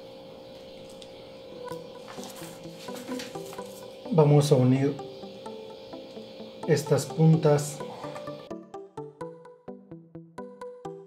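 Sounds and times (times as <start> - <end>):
soft guitar music: 1.5 - 11.0.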